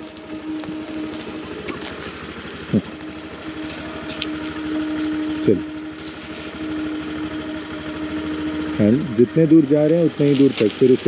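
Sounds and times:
scooter engine running: 0:00.0 - 0:11.0.

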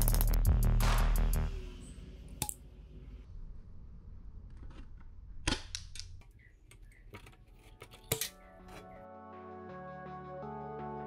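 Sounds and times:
background music: 0:00.0 - 0:02.7, 0:08.0 - 0:11.0
tin snips cutting sheet metal: 0:06.7 - 0:09.0.

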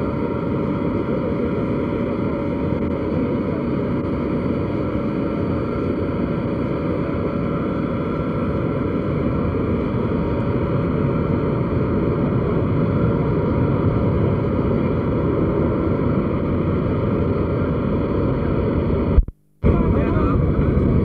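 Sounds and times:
aircraft engines droning: 0:00.0 - 0:21.0.

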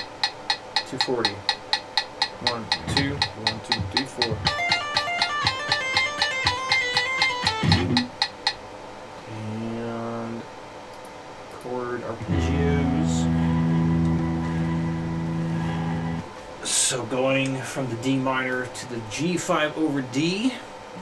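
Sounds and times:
electric guitar arpeggios: 0:04.4 - 0:08.1, 0:12.2 - 0:16.3
guitar chord strummed and ringing: 0:04.4 - 0:08.1, 0:12.2 - 0:16.3.

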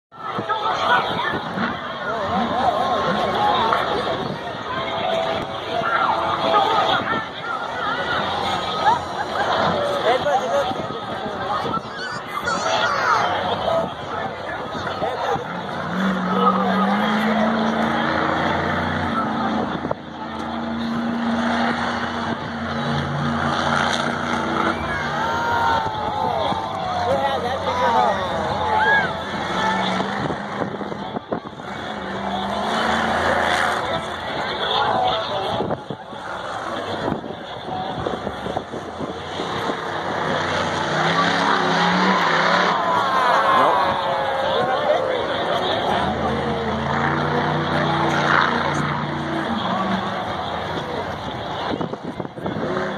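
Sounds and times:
stadium crowd noise: 0:00.0 - 0:52.9
monster truck engine running hard: 0:00.2 - 0:52.9.

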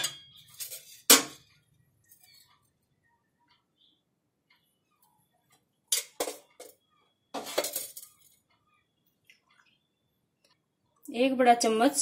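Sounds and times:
metal utensils clattering: 0:00.0 - 0:01.5, 0:05.9 - 0:08.4.

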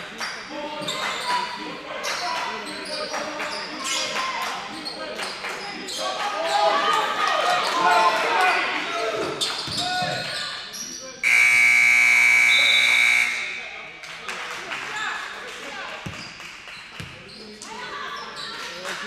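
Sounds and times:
players and spectators voices: 0:00.0 - 0:19.0
ball bouncing on court: 0:09.6 - 0:10.2, 0:16.0 - 0:17.2
scoreboard buzzer: 0:11.2 - 0:13.7.

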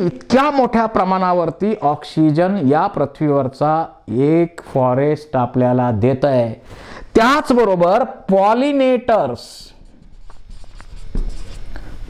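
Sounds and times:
marker writing on whiteboard: 0:09.6 - 0:12.0.

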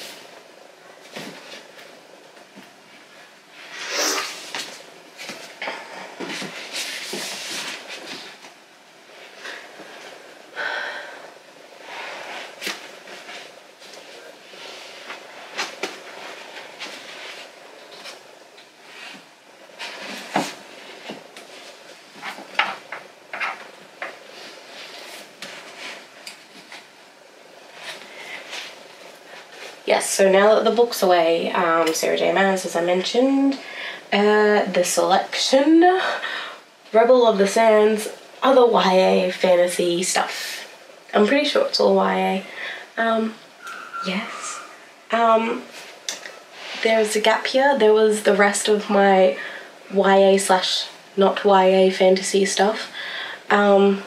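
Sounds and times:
books scraping on a shelf: 0:06.2 - 0:08.5, 0:18.8 - 0:26.9.

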